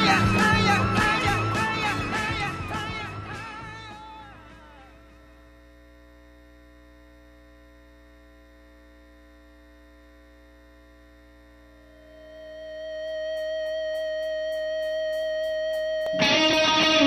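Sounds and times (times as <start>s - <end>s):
music track: 0.0s - 4.7s, 13.3s - 17.0s
faint electrical mains hum: 0.0s - 17.0s.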